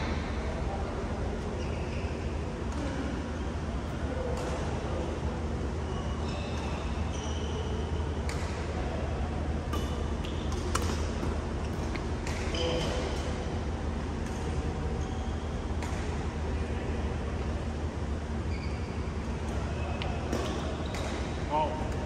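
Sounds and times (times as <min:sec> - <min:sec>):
court shoes squeaking: 0:01.4 - 0:03.2, 0:05.8 - 0:08.8, 0:09.6 - 0:13.3, 0:14.2 - 0:16.4, 0:18.2 - 0:22.0
steady low hum: 0:07.7 - 0:22.0.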